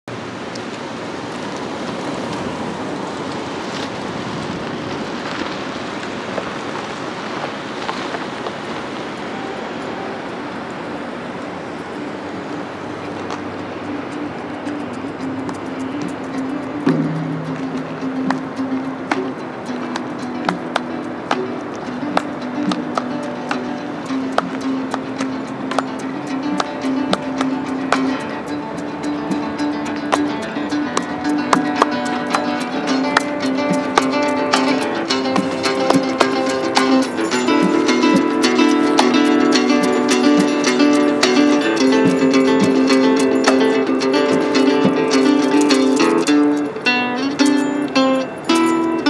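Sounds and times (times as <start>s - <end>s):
road traffic hiss: 0.1s - 49.0s
low melodic line: 9.8s - 49.0s
drum clicks: 13.2s - 49.0s.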